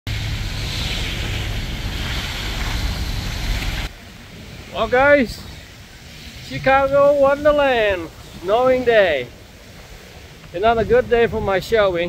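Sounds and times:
street traffic on snowy road: 0.0s - 11.8s
wind rumbling on microphone: 0.1s - 12.0s.

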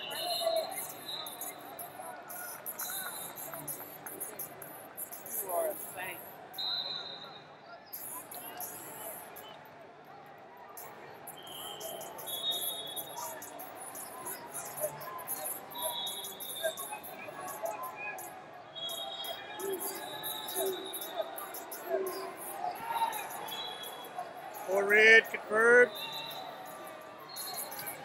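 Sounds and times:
distant overlapping voices: 0.0s - 7.2s, 10.5s - 28.0s
short high-pitched squeaks: 11.3s - 28.0s.

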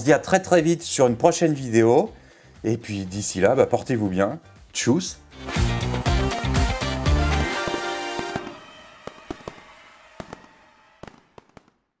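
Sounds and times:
outro jingle: 5.4s - 8.5s.

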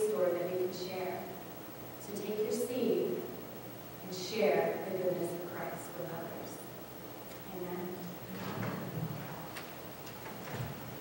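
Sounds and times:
low murmur: 7.3s - 11.0s.

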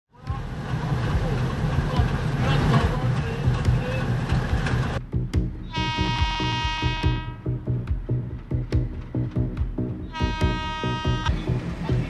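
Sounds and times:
train rail noise: 0.1s - 5.0s, 5.7s - 12.0s
diesel locomotive engine rumble: 0.1s - 12.0s
electronic music with synth chord: 5.0s - 12.0s.

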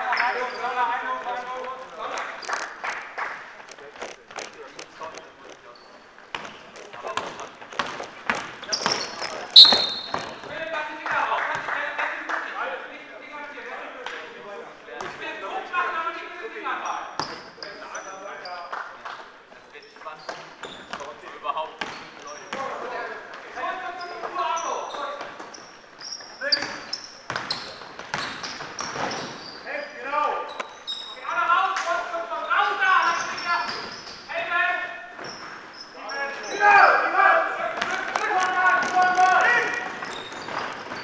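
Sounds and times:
sneaker squeaks: 0.0s - 0.8s, 4.6s - 10.6s, 16.8s - 18.7s, 19.8s - 21.2s, 21.8s - 31.4s, 32.4s - 36.8s, 39.5s - 41.0s
players calling out: 8.5s - 10.6s
basketball bouncing: 9.6s - 10.5s.

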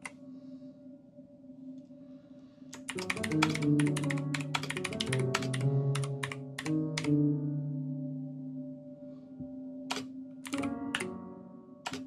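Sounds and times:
keyboard key clicks: 2.7s - 7.2s, 9.9s - 11.2s.

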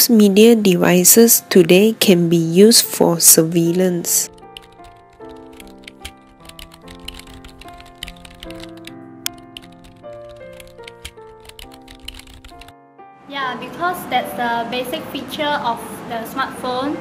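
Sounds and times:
background music with held notes: 0.0s - 17.0s
keyboard typing: 4.3s - 12.8s.

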